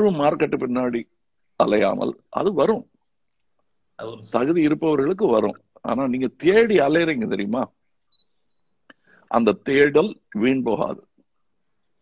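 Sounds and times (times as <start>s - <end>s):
man speaking: 4.0s - 7.8s.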